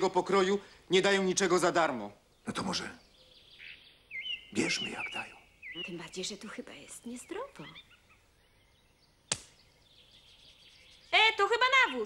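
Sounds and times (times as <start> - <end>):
outdoor background hiss: 0.0 - 12.0
sharp click: 9.3 - 9.6.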